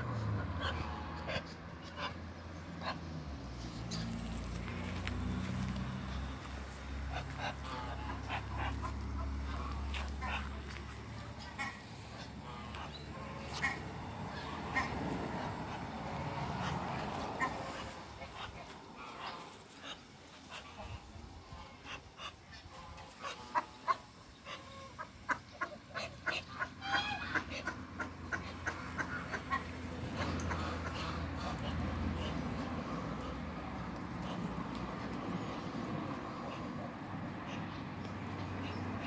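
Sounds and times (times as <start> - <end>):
ducks calling: 0.0 - 39.0.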